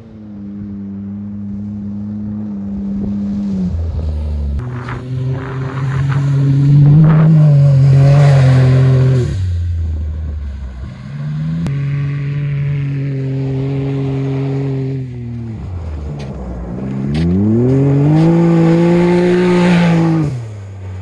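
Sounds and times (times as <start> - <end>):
engine at high revs: 0.0 - 21.0
tires spinning on ice: 0.0 - 21.0.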